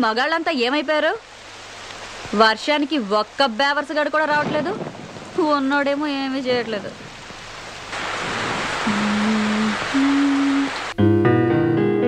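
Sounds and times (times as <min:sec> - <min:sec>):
heavy rain pouring: 0:00.0 - 0:11.0.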